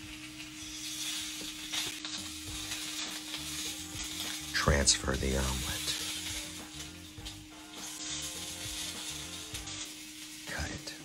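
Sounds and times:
hot oil sizzling: 0:00.0 - 0:11.0.

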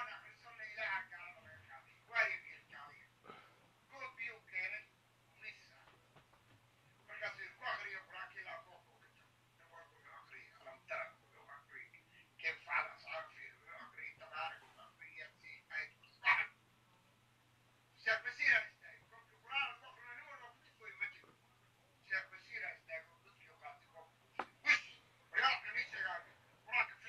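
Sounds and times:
person talking over telephone: 0:00.0 - 0:06.0, 0:07.0 - 0:16.6, 0:18.0 - 0:21.4, 0:22.0 - 0:27.0
faint low hum: 0:00.0 - 0:27.0.

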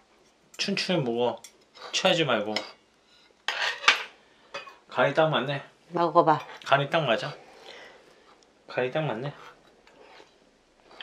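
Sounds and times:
metal spoon scraping steel bowl: 0:02.6 - 0:04.0.

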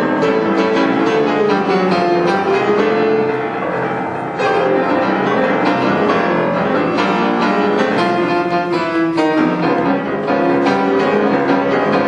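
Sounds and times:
grand piano playing fast tune: 0:00.0 - 0:12.0.

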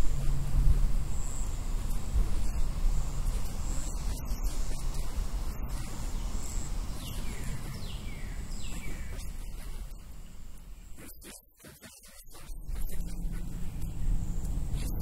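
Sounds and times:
low rumble: 0:00.0 - 0:07.0
falling bird chirps: 0:03.4 - 0:10.0.

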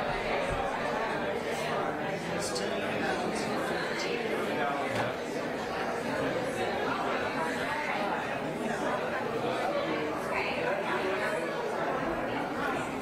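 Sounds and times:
chatter of many people: 0:00.0 - 0:13.0.

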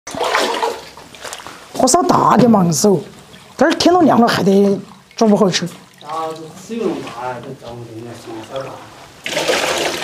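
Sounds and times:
water splashing and sloshing: 0:00.1 - 0:10.0.

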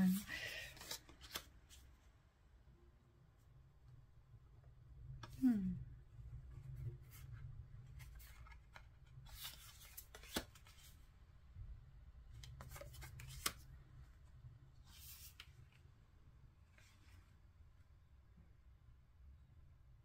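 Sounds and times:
cards sliding and rustling: 0:00.1 - 0:01.9, 0:07.9 - 0:11.0, 0:12.4 - 0:13.7, 0:14.8 - 0:15.9.

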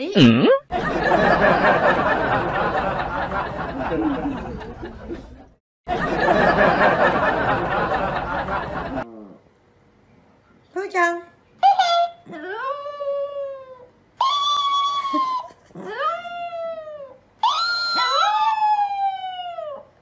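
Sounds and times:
small dog yelping: 0:16.1 - 0:19.8.

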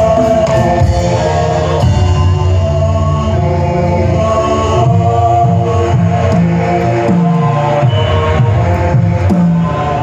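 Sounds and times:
voices chanting long notes: 0:00.0 - 0:10.0.

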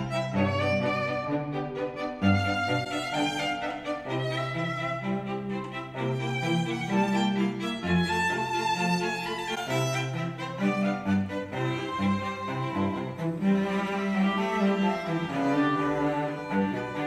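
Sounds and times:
sustained cello and bass notes: 0:00.0 - 0:17.0
violins: 0:00.0 - 0:17.0.

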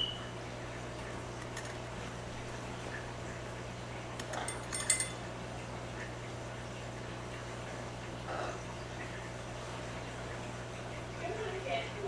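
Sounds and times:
steady low hum: 0:00.0 - 0:12.0
sharp ringing clicks: 0:04.4 - 0:05.3.

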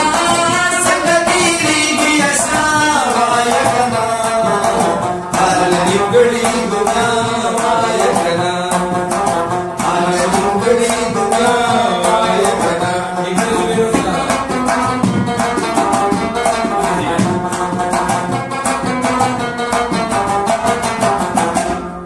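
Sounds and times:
clay-pot percussion strikes: 0:00.0 - 0:22.0
plucked string folk melody: 0:00.0 - 0:22.0.

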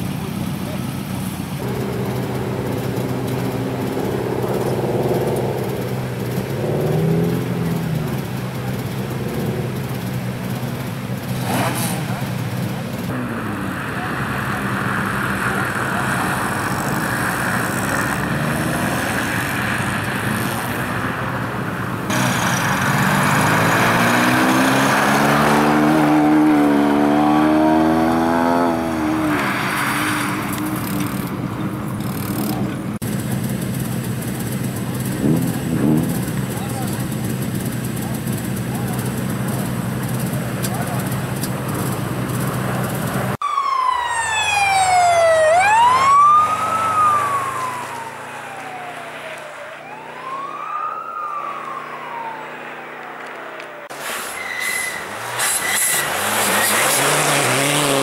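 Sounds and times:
car engines idling: 0:00.0 - 0:54.0
rally car engine revving: 0:01.6 - 0:43.4, 0:55.0 - 0:58.0.

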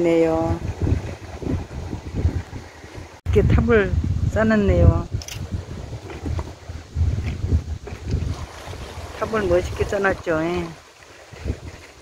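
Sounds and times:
wind buffeting microphone: 0:00.0 - 0:12.0
sea washing on pebbles: 0:05.6 - 0:12.0.

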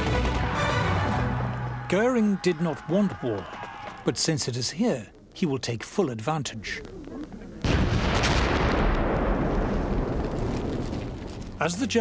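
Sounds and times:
artillery blasts: 0:07.6 - 0:11.6.

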